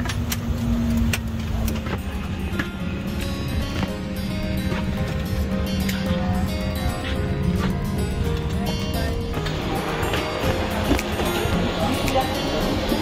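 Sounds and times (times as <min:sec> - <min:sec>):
soft music: 0:00.8 - 0:13.0.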